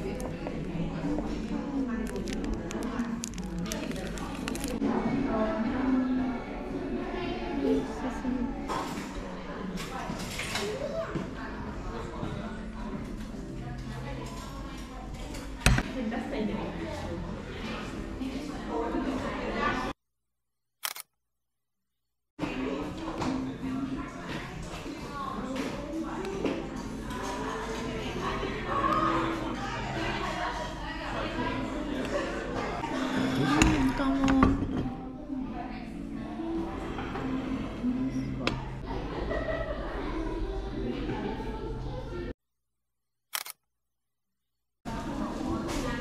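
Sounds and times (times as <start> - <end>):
cafe voices: 0.0 - 20.0, 22.4 - 42.4.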